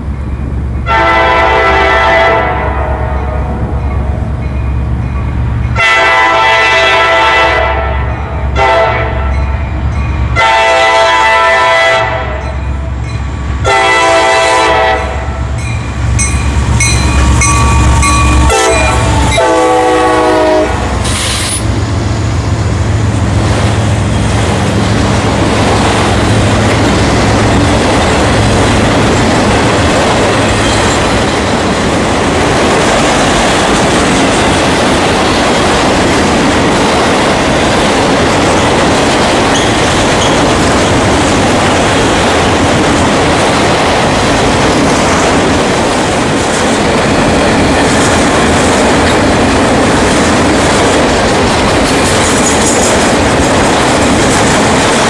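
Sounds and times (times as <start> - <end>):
locomotive air horn blasts: 0.8 - 3.5, 5.8 - 9.3, 10.4 - 12.4, 13.6 - 15.5, 18.3 - 21.6
train wheels clacking on rails: 3.2 - 11.4, 12.1 - 55.0
locomotive engine rumble: 12.4 - 55.0.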